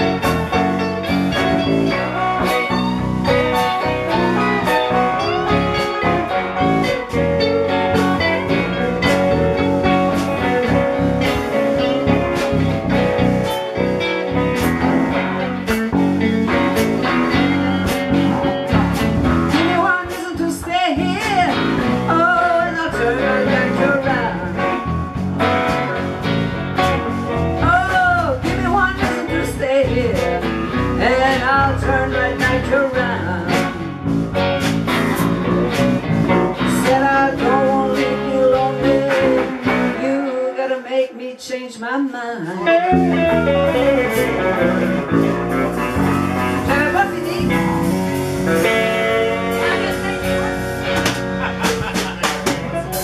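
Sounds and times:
lead guitar solo with bent notes: 0.0s - 40.8s, 42.6s - 53.0s
live blues band playing: 0.0s - 41.8s, 42.4s - 53.0s.

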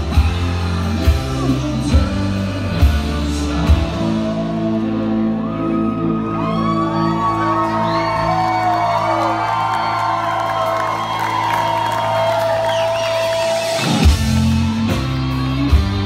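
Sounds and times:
rock band drumless passage: 8.9s - 16.0s.

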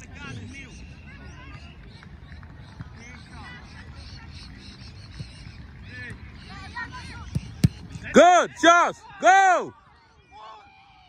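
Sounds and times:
distant shouts: 0.0s - 11.0s.

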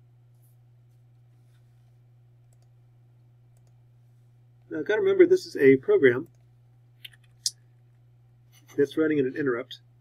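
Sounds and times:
computer mouse clicks: 2.5s - 2.7s, 3.6s - 3.8s.

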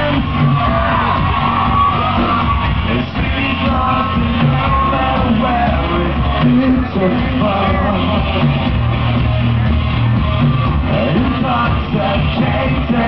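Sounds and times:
vocalist singing and shouting: 0.0s - 1.3s, 2.2s - 8.8s, 10.8s - 13.0s
rock band playing live: 0.0s - 13.0s.

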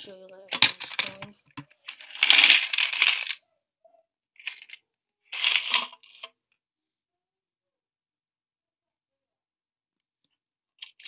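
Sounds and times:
coins sliding and clinking: 0.6s - 3.4s, 4.4s - 6.3s.

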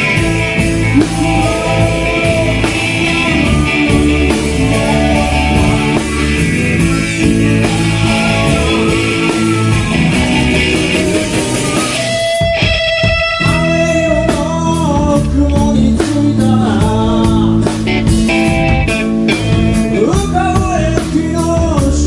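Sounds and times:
ringing electric guitar notes: 0.0s - 14.2s
live rock band playing: 0.0s - 22.0s.

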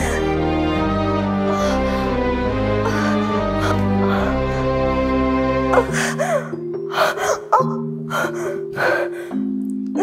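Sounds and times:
background music with low notes: 0.0s - 10.0s
woman sobbing: 2.8s - 5.0s, 5.7s - 9.4s.

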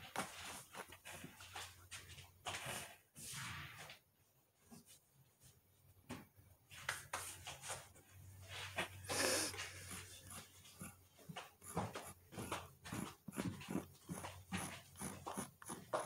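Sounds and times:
dog panting and sniffing: 8.8s - 16.0s
dog huffing: 9.0s - 16.0s.

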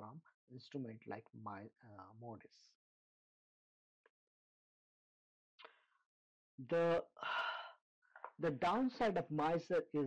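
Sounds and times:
man speaking a word: 0.0s - 2.6s.

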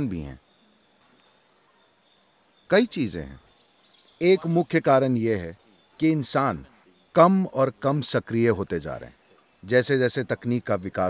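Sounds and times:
man speaking: 0.0s - 0.4s, 2.7s - 3.4s, 4.2s - 11.0s.

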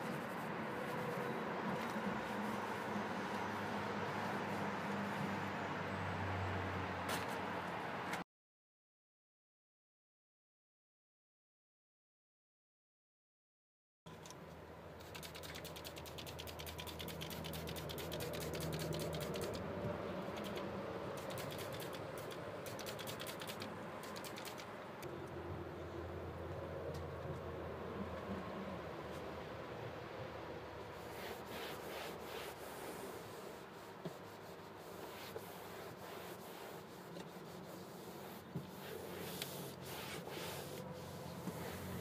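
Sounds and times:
cloth rubbing on vinyl dashboard: 0.0s - 5.3s, 30.9s - 42.0s.

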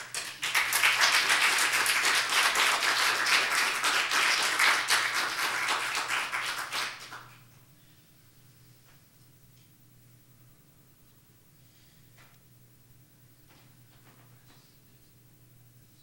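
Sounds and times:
congregation applauding: 0.0s - 7.4s.

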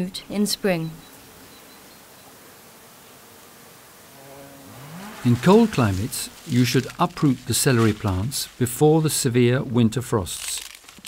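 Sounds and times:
insect buzzing: 0.0s - 8.9s
open-air ambience hiss: 0.0s - 11.0s.

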